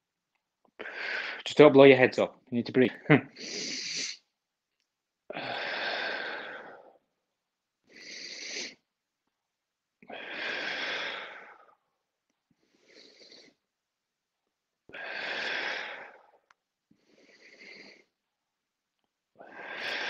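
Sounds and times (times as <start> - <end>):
man breathing hard: 0.8 - 1.4, 5.3 - 7.0, 7.8 - 8.8, 10.0 - 11.8, 14.9 - 18.2, 19.4 - 20.0.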